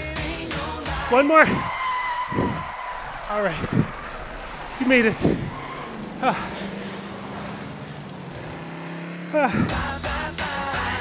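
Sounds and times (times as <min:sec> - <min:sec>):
racing vehicle engines droning: 0:00.0 - 0:11.0.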